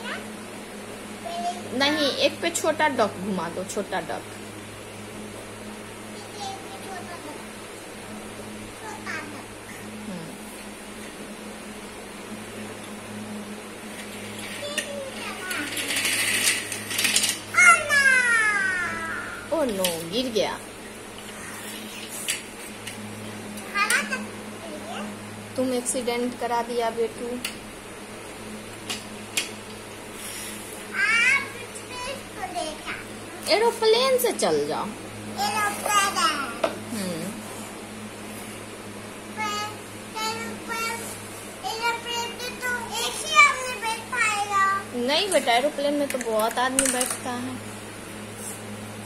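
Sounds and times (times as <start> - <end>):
child's high gliding vocal: 17.6 - 19.5.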